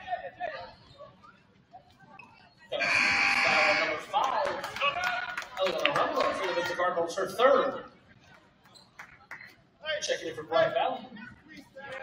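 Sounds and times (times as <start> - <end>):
scoreboard buzzer: 2.8 - 4.0.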